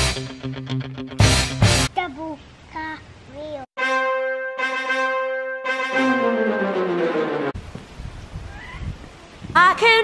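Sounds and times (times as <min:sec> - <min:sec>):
brass instrument held notes: 0:03.8 - 0:07.6.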